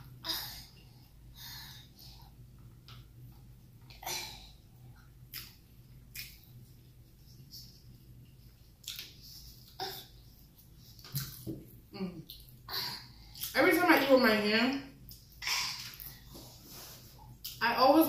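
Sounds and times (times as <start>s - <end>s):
wet chewing sounds: 4.9s - 13.6s.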